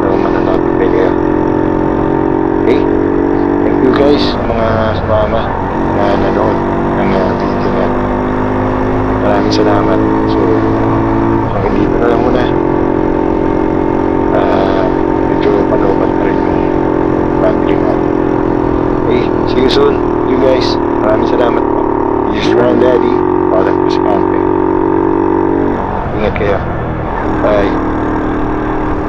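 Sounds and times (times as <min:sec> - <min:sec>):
person talking: 0:00.0 - 0:01.2, 0:02.6 - 0:02.9, 0:03.5 - 0:07.9, 0:09.2 - 0:10.7, 0:11.6 - 0:12.6, 0:14.3 - 0:16.7, 0:17.4 - 0:18.0, 0:19.1 - 0:24.5, 0:26.2 - 0:26.6, 0:27.4 - 0:27.8
vehicle engine droning: 0:00.0 - 0:29.0.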